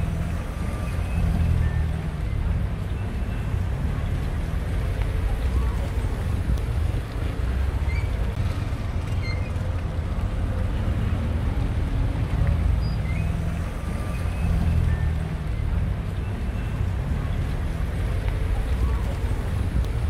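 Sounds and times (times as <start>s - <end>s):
street traffic rumble: 0.0s - 20.0s.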